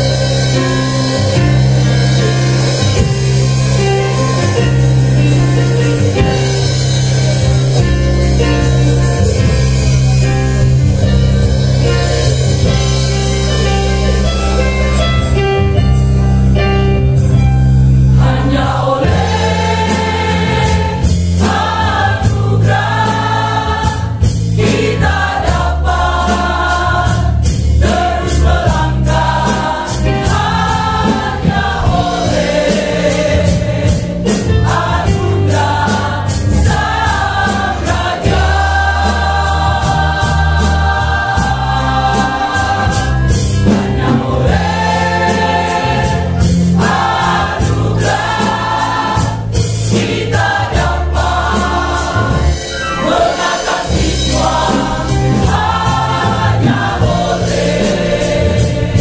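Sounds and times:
choir singing gospel in harmony: 0.0s - 15.3s, 17.7s - 59.0s
steady beat: 18.5s - 59.0s.

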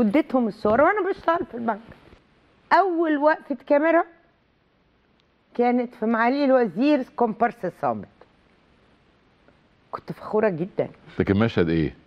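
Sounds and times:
woman speaking: 0.0s - 2.0s, 2.7s - 4.3s, 5.5s - 8.2s, 9.9s - 11.0s.

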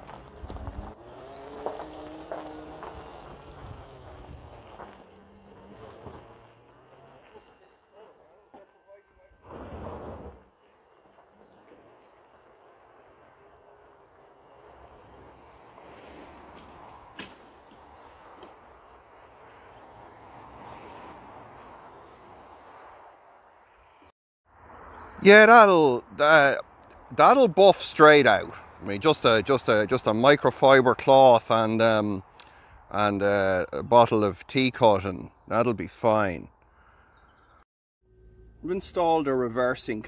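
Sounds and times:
tyres crunching on gravel: 0.0s - 8.8s.

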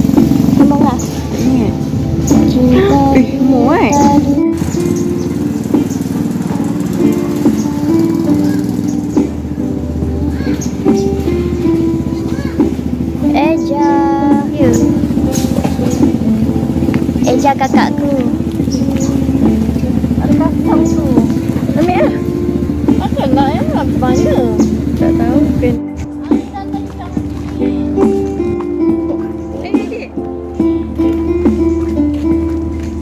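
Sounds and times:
background music with held notes: 0.0s - 33.0s
low accompaniment: 0.0s - 33.0s
quad bike engine running: 0.0s - 33.0s
person singing slow melody: 2.3s - 4.8s.

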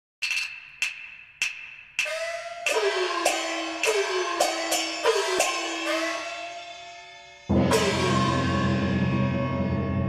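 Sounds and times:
sharp wooden percussion strokes: 0.2s - 9.6s.

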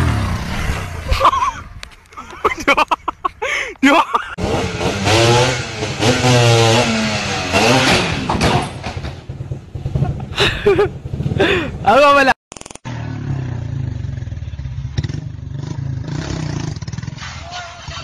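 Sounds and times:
motorcycle engine running: 0.0s - 1.1s, 12.8s - 17.2s.

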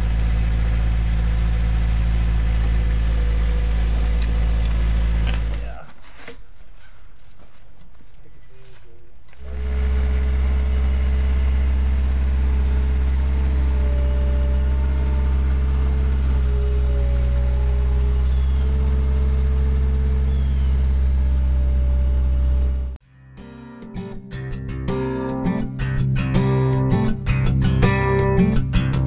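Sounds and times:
loader engine humming steadily: 0.0s - 5.8s, 9.4s - 23.0s.

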